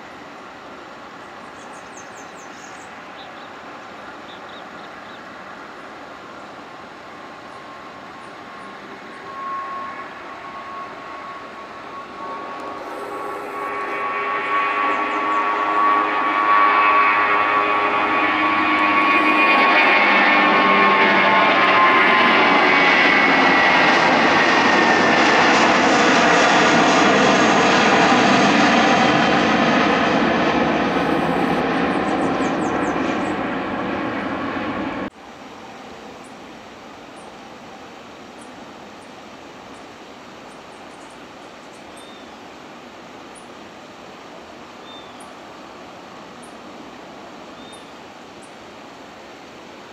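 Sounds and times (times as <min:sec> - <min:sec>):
jet engines whining: 0:02.8 - 0:35.1.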